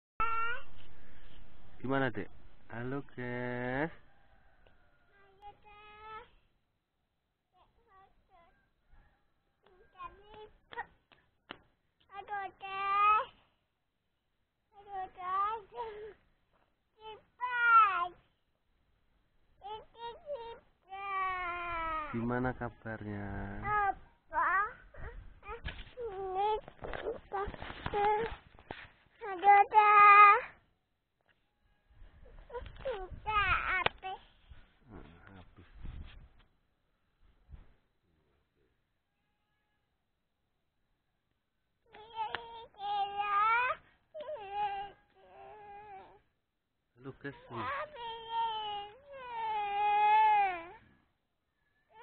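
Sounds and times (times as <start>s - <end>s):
adult speaking: 1.8s - 4.0s, 22.1s - 24.0s, 34.9s - 35.8s, 47.0s - 47.9s
toddler whining: 19.6s - 22.1s, 23.7s - 28.4s, 32.3s - 34.2s, 41.9s - 46.4s, 47.4s - 50.8s
camera handling rubbing and knocking: 25.6s - 29.0s
toddler high-pitched call: 47.5s - 50.8s.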